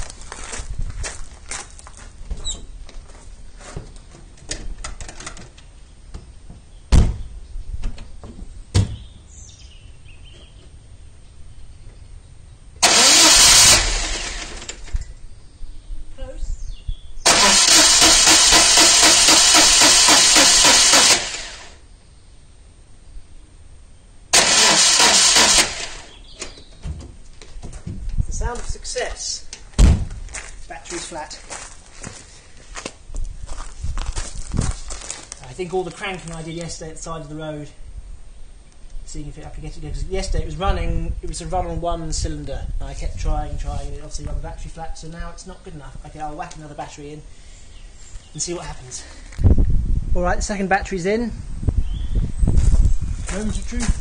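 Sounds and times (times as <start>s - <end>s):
starter motor cranking engine: 12.8s - 15.0s, 17.2s - 21.8s, 24.3s - 26.6s.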